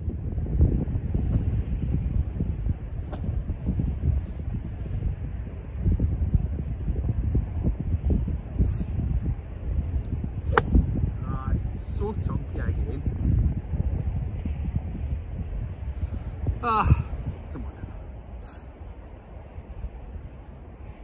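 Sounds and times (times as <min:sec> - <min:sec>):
wind buffeting microphone: 0:00.0 - 0:21.0
golf club striking ball: 0:10.0 - 0:11.1.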